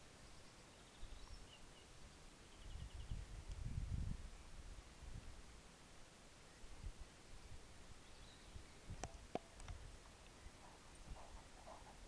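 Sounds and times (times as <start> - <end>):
outdoor hush: 0.0 - 12.0
songbirds chirping: 0.0 - 12.0.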